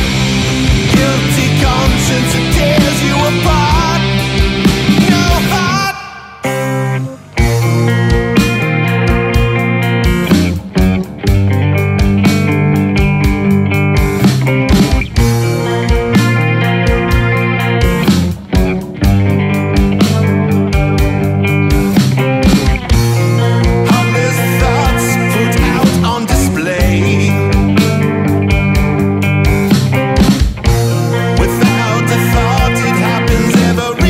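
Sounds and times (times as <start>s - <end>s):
steady drum beat: 0.0s - 6.0s, 7.3s - 34.0s
bass guitar: 0.0s - 34.0s
distorted electric guitar chords: 0.0s - 34.0s.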